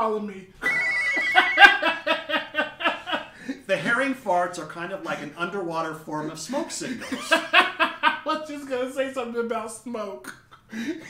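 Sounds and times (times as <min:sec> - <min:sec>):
men laughing heartily: 0:00.6 - 0:03.6, 0:06.9 - 0:08.4.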